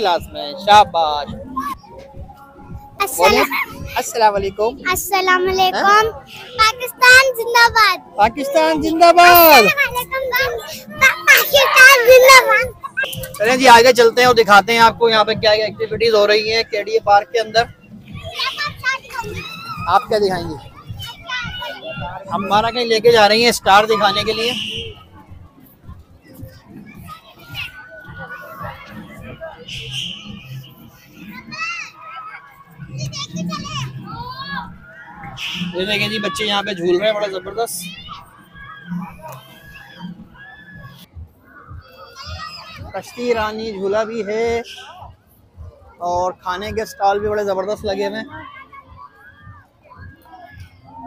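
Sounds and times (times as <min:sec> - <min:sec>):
children playing and calling out: 0:00.0 - 0:14.4, 0:15.5 - 0:51.0
crowd voices: 0:00.0 - 0:51.0
high held voice: 0:09.2 - 0:13.5.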